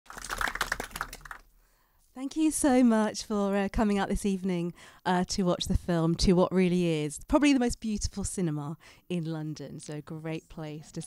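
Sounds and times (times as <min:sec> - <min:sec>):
audience hand clapping: 0:00.1 - 0:01.5.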